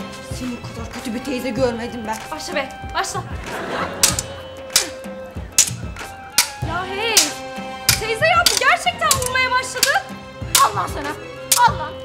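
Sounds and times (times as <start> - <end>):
background music: 0.0 - 12.0
prop swords clanking: 4.0 - 12.0.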